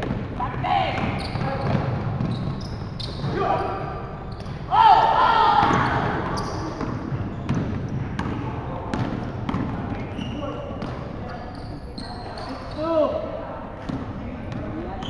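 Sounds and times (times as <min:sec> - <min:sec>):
basketball bouncing on wooden floor: 0:00.0 - 0:03.4, 0:05.6 - 0:10.2
sneakers squeaking: 0:00.0 - 0:15.0
players shouting: 0:04.7 - 0:06.5.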